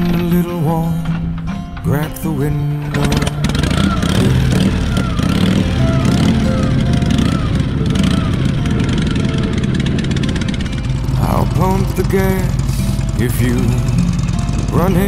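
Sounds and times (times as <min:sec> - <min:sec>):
pop music: 0:00.0 - 0:08.6, 0:11.2 - 0:15.0
motorcycle engines kick-started: 0:00.0 - 0:15.0.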